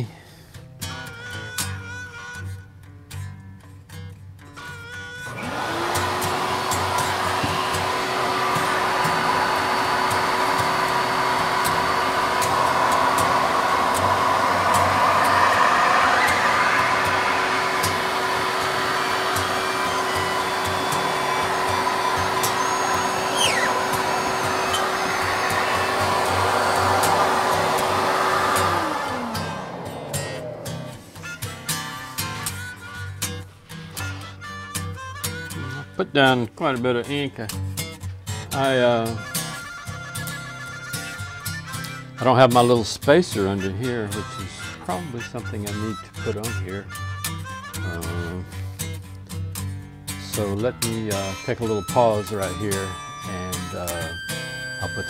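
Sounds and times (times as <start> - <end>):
vacuum suction motor humming: 5.3 - 32.5, 50.2 - 55.0.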